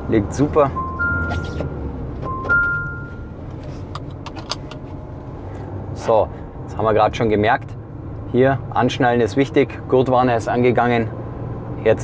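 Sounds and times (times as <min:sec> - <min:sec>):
seatbelt warning chime: 0:00.0 - 0:03.4
diesel engine running: 0:00.0 - 0:12.0.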